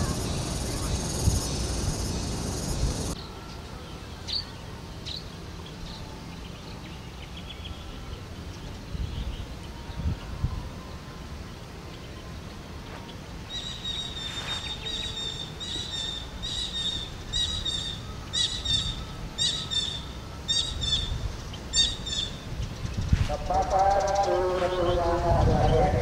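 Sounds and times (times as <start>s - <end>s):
low outdoor rumble: 0.0s - 3.2s, 3.8s - 26.0s
bird calling: 13.5s - 26.0s.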